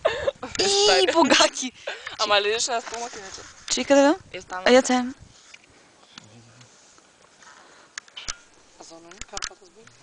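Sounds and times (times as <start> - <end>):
open-air background hiss: 0.0 - 10.0.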